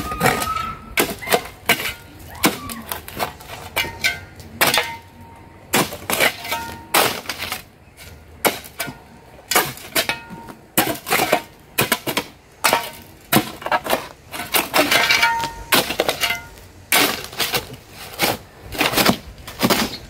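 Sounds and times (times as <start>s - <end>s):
shovel clanking on stony ground: 0.2s - 20.0s.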